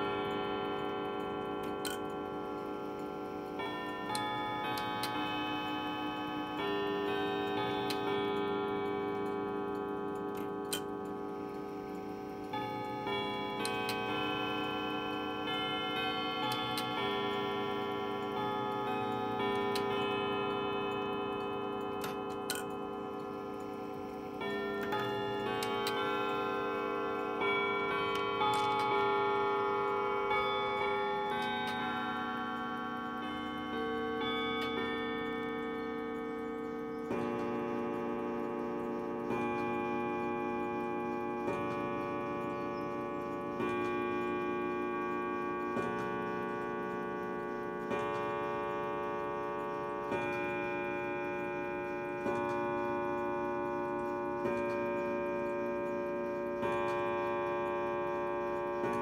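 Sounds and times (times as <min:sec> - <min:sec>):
clock chime bell notes: 0:00.0 - 0:59.0
clock ticking: 0:00.0 - 0:59.0.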